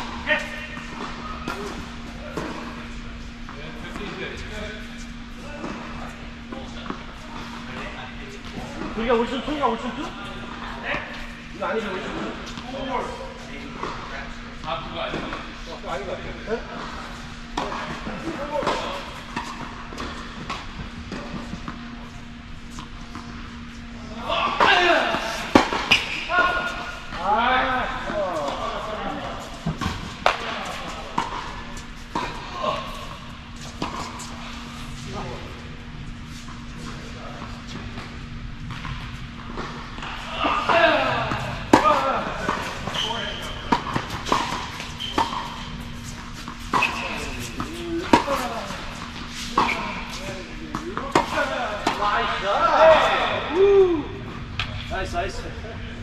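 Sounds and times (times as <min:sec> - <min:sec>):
steady low hum: 0:00.0 - 0:56.0
tennis balls struck and bouncing: 0:29.6 - 0:32.4, 0:37.9 - 0:52.0.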